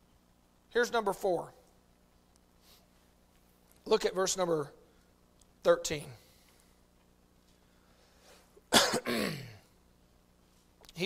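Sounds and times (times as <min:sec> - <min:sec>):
man coughing: 0:08.7 - 0:09.7.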